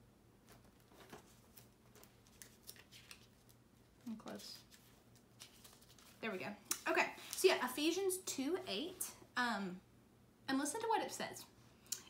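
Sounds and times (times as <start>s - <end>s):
thin pages being turned: 0.5s - 6.4s.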